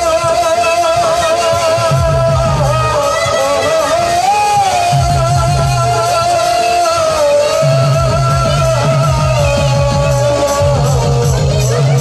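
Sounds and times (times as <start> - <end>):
fast dense drumming: 0.0 - 12.0.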